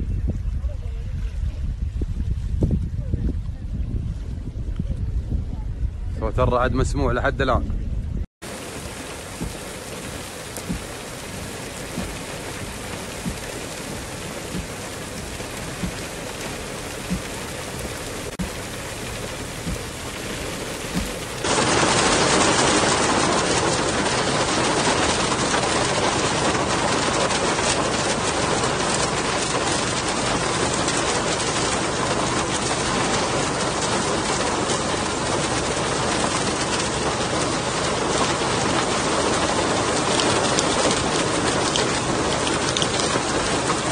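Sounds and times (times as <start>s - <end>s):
heavy rain hissing: 8.4s - 43.9s
sharp rain taps: 8.4s - 43.9s.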